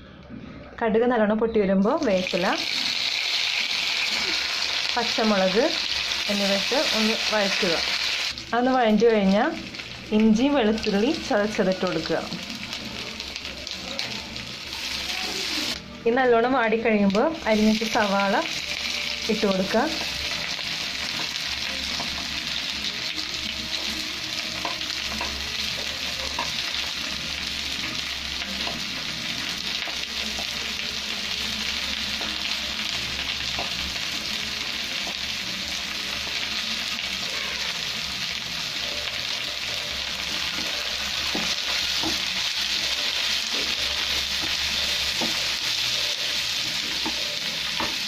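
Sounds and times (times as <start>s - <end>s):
onions sizzling in oil: 1.9s - 48.0s.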